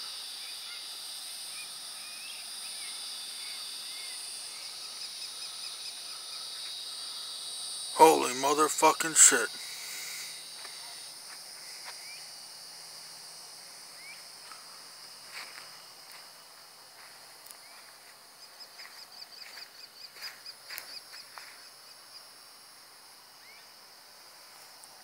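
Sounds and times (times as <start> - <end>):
insects chorus: 0.0 - 25.0.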